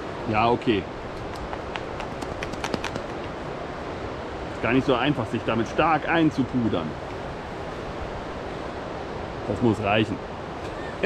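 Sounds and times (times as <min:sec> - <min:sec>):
outdoor noise hiss: 0:00.0 - 0:11.0
powder bottle shaking clicks: 0:01.2 - 0:03.3.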